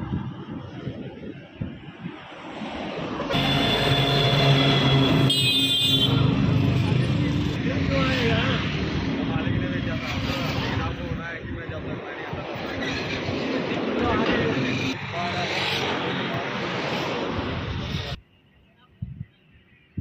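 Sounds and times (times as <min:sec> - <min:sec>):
people talking: 0:05.8 - 0:16.9.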